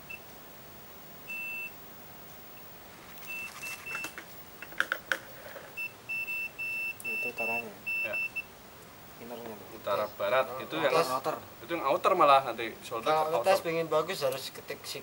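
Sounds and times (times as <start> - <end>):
multimeter continuity beeps: 1.3 - 1.8, 2.5 - 4.2, 5.8 - 8.5.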